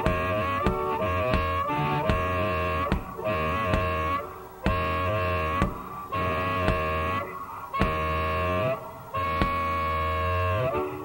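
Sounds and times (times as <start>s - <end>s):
drum hits: 0.1s - 4.0s, 4.7s - 6.0s, 6.6s - 7.0s, 7.8s - 8.2s, 9.4s - 9.6s.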